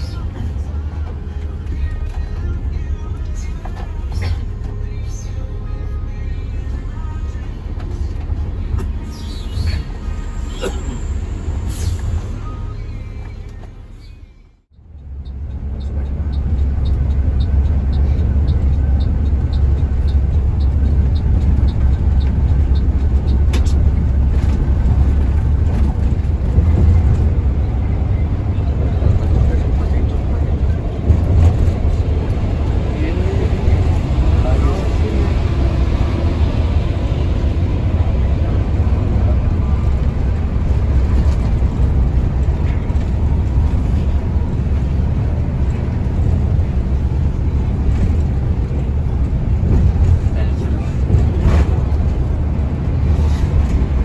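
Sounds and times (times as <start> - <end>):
bus engine and road rumble: 0.0 - 54.0.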